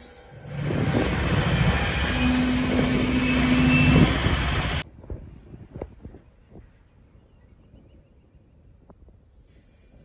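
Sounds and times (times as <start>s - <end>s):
diesel locomotive passing: 0.0s - 5.7s.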